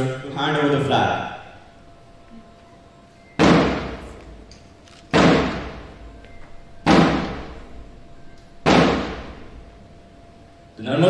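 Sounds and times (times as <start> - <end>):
loud thuds ringing in a hall: 3.2 - 10.8.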